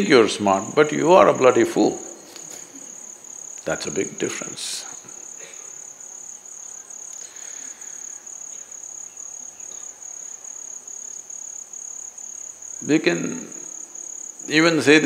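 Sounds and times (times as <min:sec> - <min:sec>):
crickets chirping: 0:00.0 - 0:15.0.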